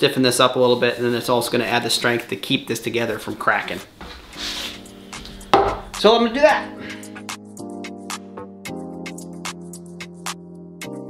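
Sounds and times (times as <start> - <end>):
background music with held notes: 0.7 - 11.0
knee pad knocking on workbench: 5.4 - 6.0.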